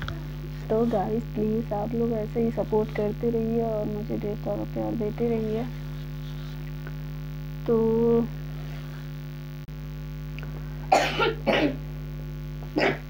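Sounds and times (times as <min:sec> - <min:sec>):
electrical hum: 0:00.0 - 0:13.0
woman coughing: 0:10.9 - 0:11.8, 0:12.7 - 0:13.0.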